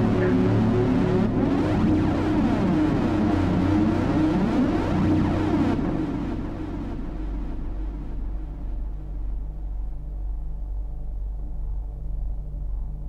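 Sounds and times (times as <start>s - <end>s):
low synthesizer bass drone: 0.0s - 13.0s
soft pulsing synth tone: 0.0s - 13.0s.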